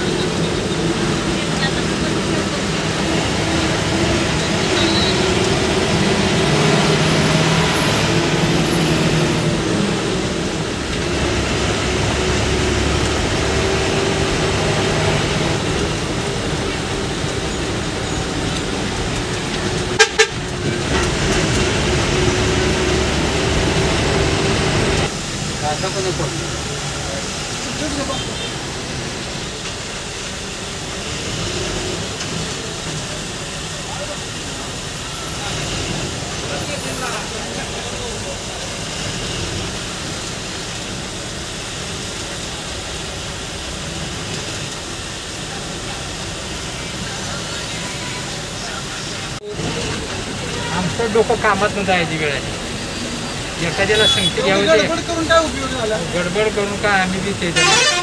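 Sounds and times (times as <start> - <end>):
coach engine and road noise: 0.0 - 58.0
horn toots: 4.4 - 9.5, 19.8 - 21.0, 53.7 - 54.9, 57.5 - 58.0.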